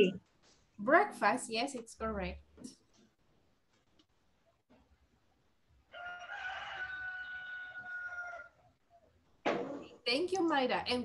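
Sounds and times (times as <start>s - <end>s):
rooster crowing: 5.9s - 8.7s.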